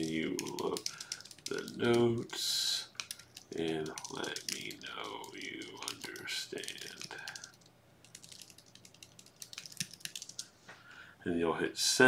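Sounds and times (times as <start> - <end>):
computer keyboard typing: 0.0 - 10.5.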